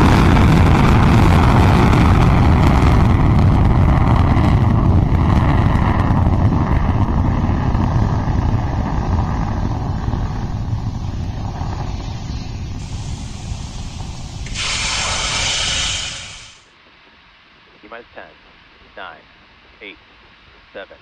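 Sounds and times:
rocket engines rumbling: 0.0 - 16.7
bright hiss: 10.9 - 16.7.

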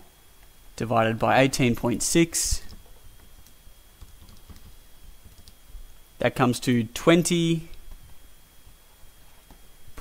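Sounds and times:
keys being pressed: 4.0 - 4.7.

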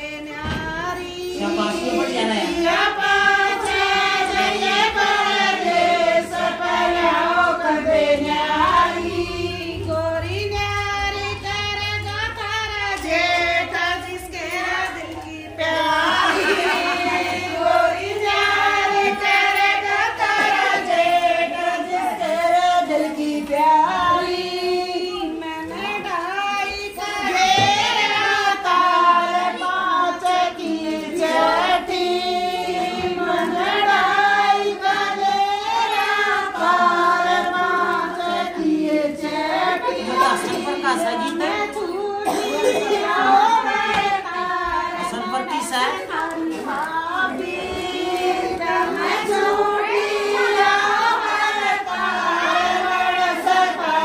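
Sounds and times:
women singing in unison: 0.0 - 54.0.

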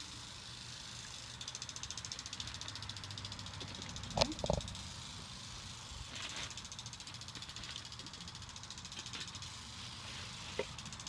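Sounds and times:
rapid mechanical ticking: 0.0 - 5.9, 6.5 - 9.8.

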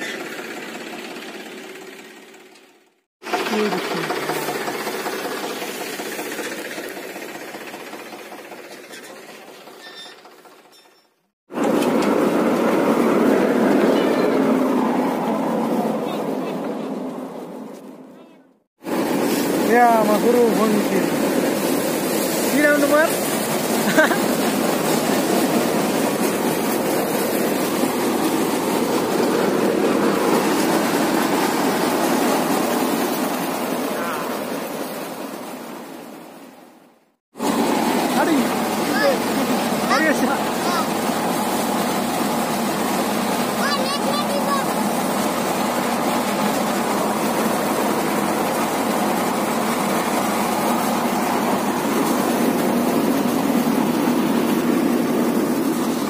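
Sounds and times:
threshing machine running: 0.0 - 10.9, 11.5 - 18.1, 18.8 - 36.6, 37.3 - 56.0.

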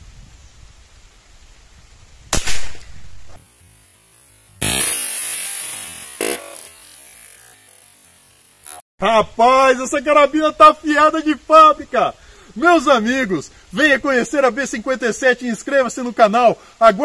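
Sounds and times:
air rifle firing: 2.3 - 3.3.

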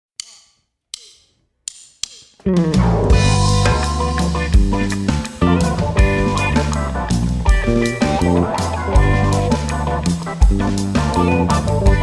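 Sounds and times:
sharp percussive clicks: 0.2 - 2.7.

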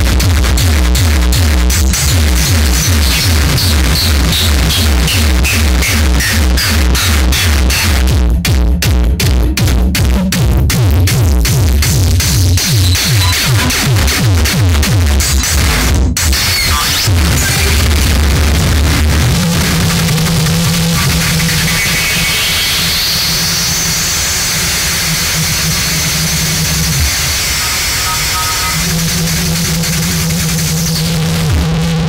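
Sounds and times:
noisy synthesizer texture: 0.0 - 9.6, 10.6 - 32.0.

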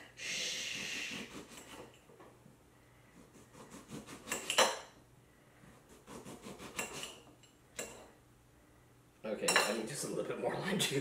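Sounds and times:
knife cutting limes: 3.3 - 4.8, 5.9 - 7.2.

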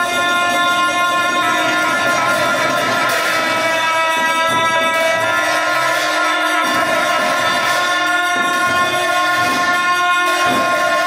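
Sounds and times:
double-reed horns sounding: 0.0 - 11.0.

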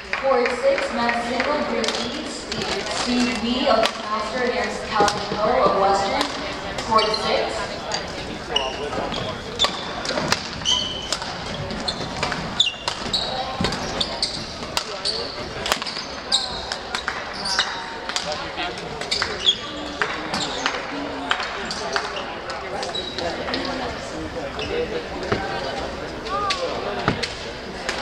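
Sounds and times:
voices chattering: 0.0 - 28.0
court shoes squeaking: 1.0 - 27.5.

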